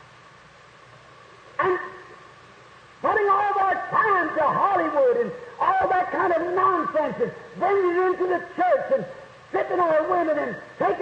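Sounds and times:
old recording hiss: 0:00.0 - 0:11.0
man speaking: 0:03.0 - 0:11.0.

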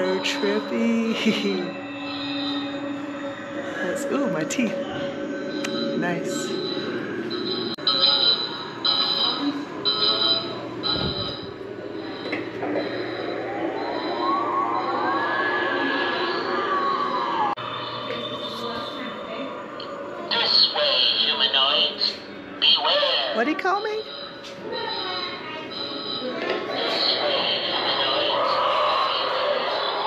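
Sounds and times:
pulsed high electronic tone: 0:00.0 - 0:21.5
sweeping electronic tone: 0:00.0 - 0:21.5.

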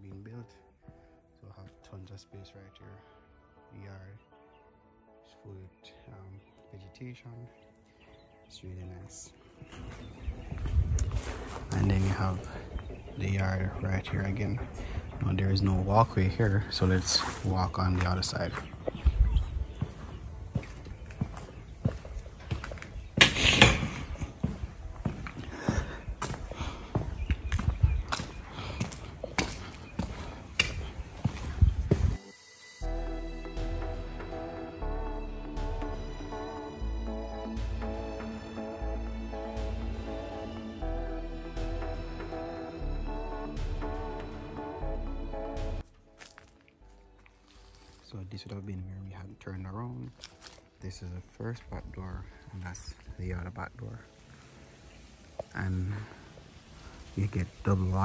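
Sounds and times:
footsteps on concrete: 0:09.4 - 0:32.2, 0:46.1 - 0:48.0, 0:50.1 - 0:50.7.

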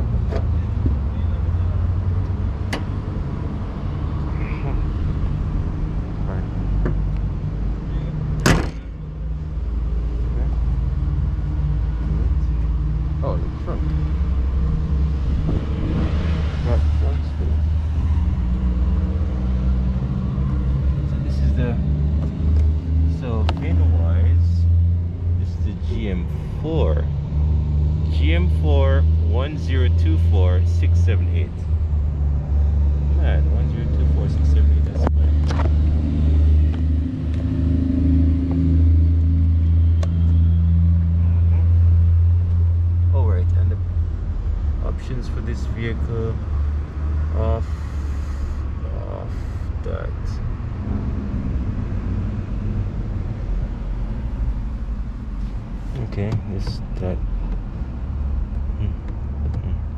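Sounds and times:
people talking: 0:04.3 - 0:04.8, 0:06.2 - 0:06.5, 0:13.2 - 0:13.8, 0:16.6 - 0:17.6, 0:21.1 - 0:21.8, 0:23.1 - 0:24.6, 0:25.4 - 0:27.1, 0:28.1 - 0:31.6, 0:33.2 - 0:35.3, 0:43.2 - 0:43.8, 0:44.8 - 0:46.4, 0:47.4 - 0:47.8, 0:48.8 - 0:50.4, 0:55.9 - 0:57.2, 0:58.8 - 0:59.0, 0:59.6 - 0:59.8
car engine idling: 0:33.0 - 0:59.7.

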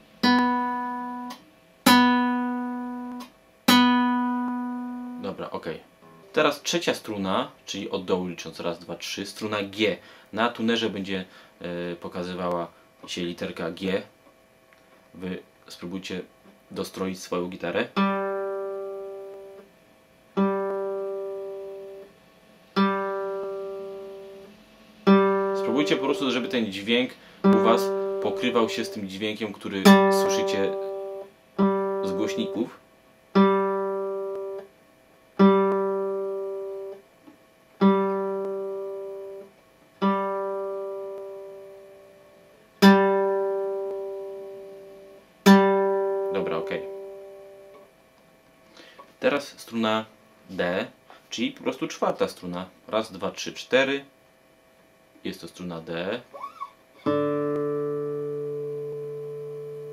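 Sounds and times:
guitar string plucked: 0:00.2 - 0:05.4, 0:20.4 - 0:22.1, 0:22.8 - 0:26.7, 0:27.4 - 0:29.1, 0:29.8 - 0:32.7, 0:33.4 - 0:34.7, 0:35.4 - 0:37.0, 0:37.8 - 0:42.0, 0:42.8 - 0:44.8, 0:45.4 - 0:47.9, 0:56.3 - 0:59.9.

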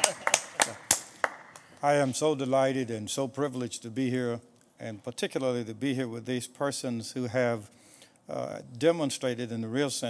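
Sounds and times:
people clapping: 0:00.0 - 0:02.1
man speaking: 0:01.8 - 0:07.7, 0:08.3 - 0:10.0.

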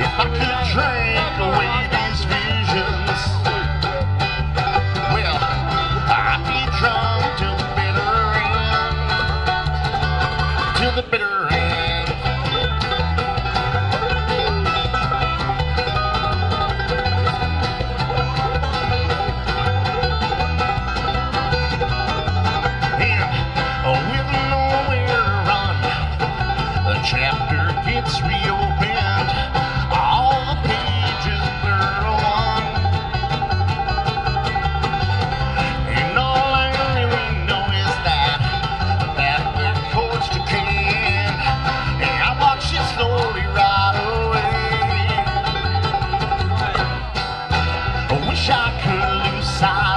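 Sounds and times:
banjo picking: 0:00.0 - 0:49.9
strummed acoustic guitar: 0:00.0 - 0:49.9
upright bass: 0:00.0 - 0:49.9.

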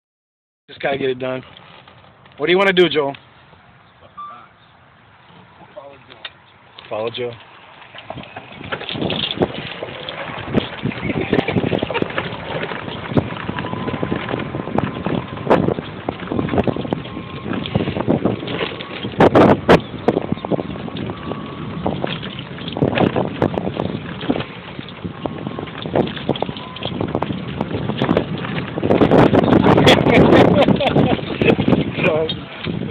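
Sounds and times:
golf cart rattling and jolting: 0:00.8 - 0:03.4, 0:05.3 - 0:32.9
wind buffeting microphone: 0:06.4 - 0:32.9.

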